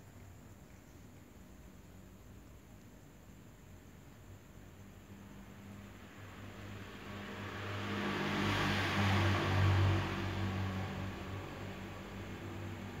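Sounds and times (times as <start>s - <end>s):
motor vehicle passing: 6.3s - 13.0s.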